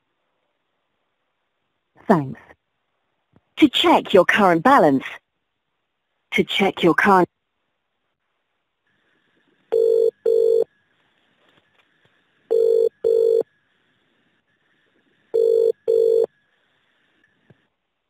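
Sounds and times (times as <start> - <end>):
telephone double ringing tone: 9.7 - 10.7, 12.5 - 13.4, 15.4 - 16.3.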